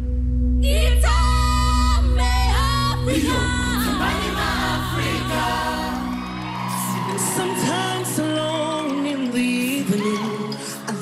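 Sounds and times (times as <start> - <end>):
choir singing: 3.1 - 8.2.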